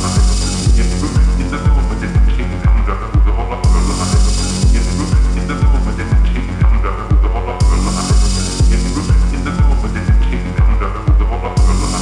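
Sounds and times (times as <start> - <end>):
deep kick drum: 0.0 - 12.0
electronic music: 0.0 - 12.0.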